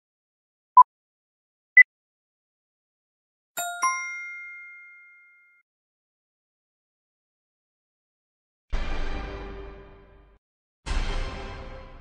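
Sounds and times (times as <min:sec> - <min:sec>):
bright two-strike ding chime: 0:03.6 - 0:05.6.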